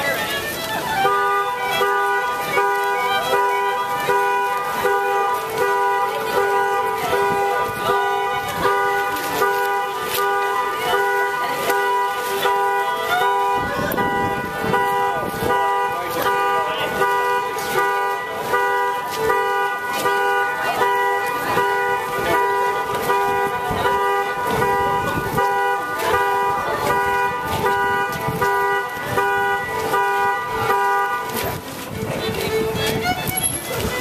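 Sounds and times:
solo fiddle dance tune: 0:00.0 - 0:34.0.

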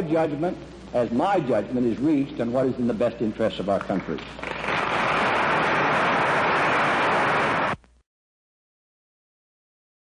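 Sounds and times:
large audience applauding: 0:04.4 - 0:07.8.

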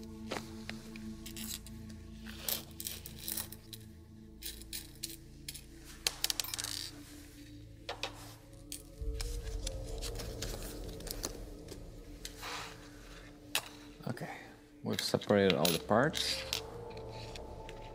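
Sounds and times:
background music: 0:00.0 - 0:17.9.

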